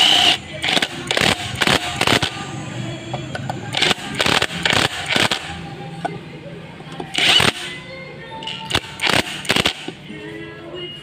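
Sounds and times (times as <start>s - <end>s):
ratchet clicking: 0.0s - 2.4s, 3.1s - 5.5s, 7.0s - 7.7s, 8.4s - 10.0s.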